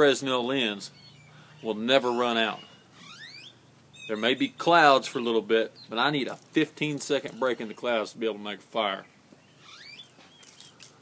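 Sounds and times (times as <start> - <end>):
bird calls: 0.5 - 6.1, 6.9 - 8.1, 8.9 - 11.0.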